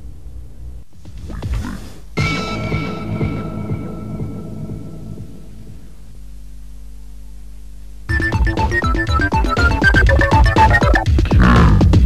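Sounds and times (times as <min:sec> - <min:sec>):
low electrical hum: 0:00.0 - 0:09.2
theme music: 0:02.2 - 0:05.8, 0:08.1 - 0:11.8.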